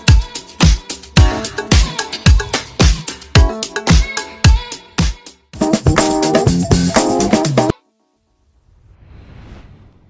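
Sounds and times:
whoosh sound effect: 8.6s - 10.0s.

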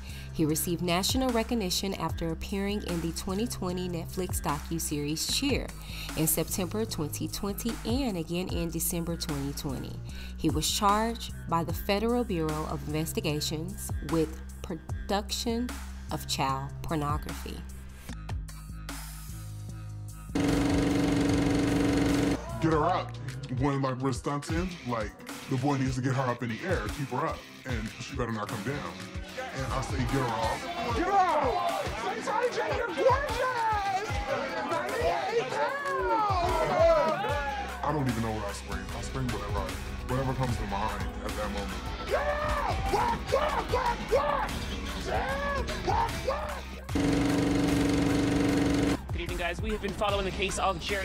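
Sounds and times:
person shouting: 32.3s - 34.0s, 35.5s - 37.7s, 42.1s - 46.8s.

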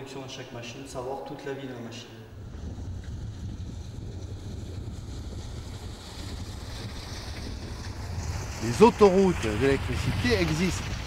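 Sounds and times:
strong wind buffeting microphone: 2.2s - 11.0s.

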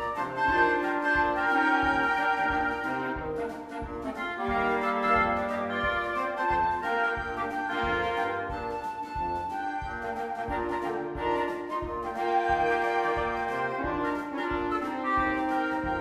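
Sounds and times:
drum kit beat: 0.0s - 16.0s
woodwind quintet playing: 0.0s - 16.0s.

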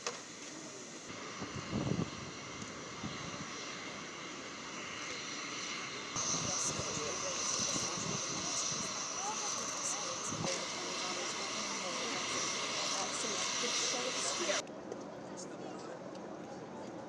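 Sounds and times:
aircraft engine running: 0.0s - 14.6s.

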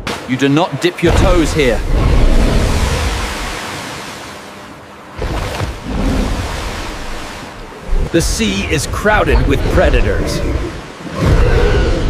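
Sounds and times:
churning sea water: 0.0s - 12.0s.

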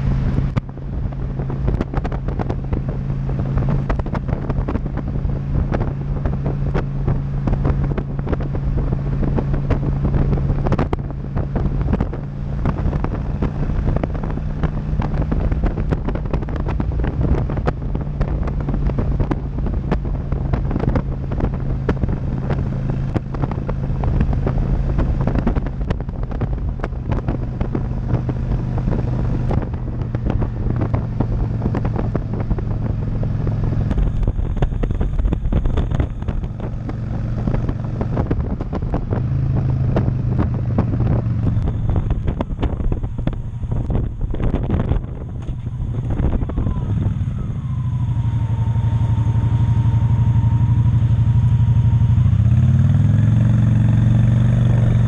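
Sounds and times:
motorcycle engine running: 0.0s - 55.0s
wind buffeting microphone: 0.0s - 55.0s.

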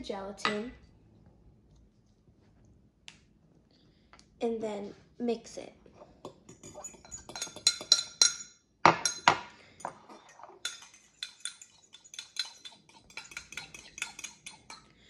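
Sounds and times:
metal spoon clinking on glass: 6.2s - 14.9s.

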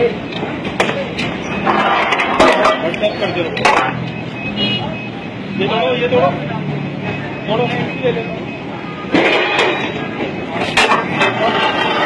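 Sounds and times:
voices calling out: 0.0s - 12.0s.

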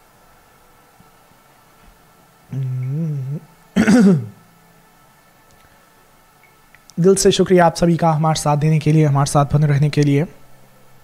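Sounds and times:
man clearing throat: 2.5s - 4.4s
man humming: 2.5s - 4.4s.

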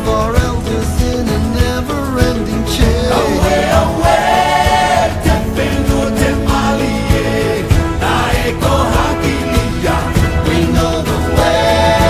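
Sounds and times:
chorus singing: 0.0s - 12.0s
steady low beat: 0.0s - 12.0s.

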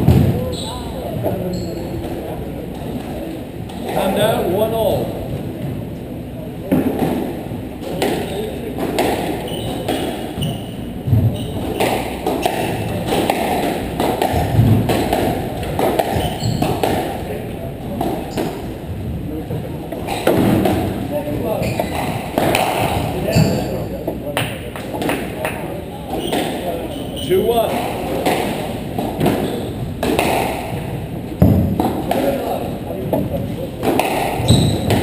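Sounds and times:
squash ball hits and thuds: 0.0s - 0.5s, 6.7s - 18.7s, 20.0s - 23.7s, 27.6s - 35.0s.

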